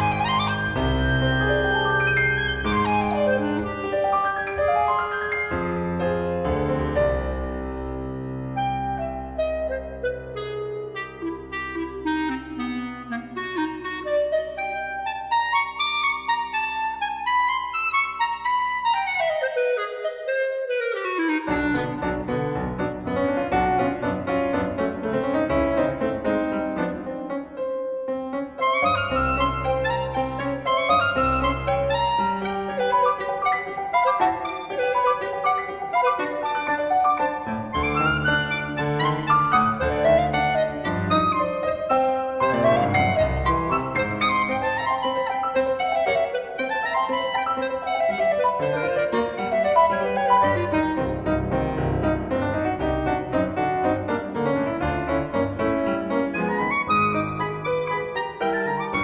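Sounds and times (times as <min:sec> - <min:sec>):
clarinet: 0:00.0 - 0:59.0
piano: 0:00.0 - 0:59.0.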